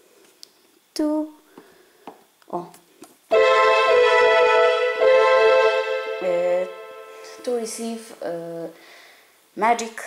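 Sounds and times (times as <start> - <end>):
keyboard string chord: 3.3 - 8.0.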